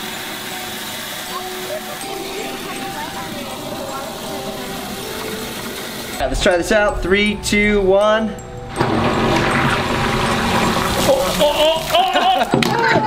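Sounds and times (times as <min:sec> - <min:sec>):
water churning from sump pump: 0:00.0 - 0:06.2, 0:08.8 - 0:12.3.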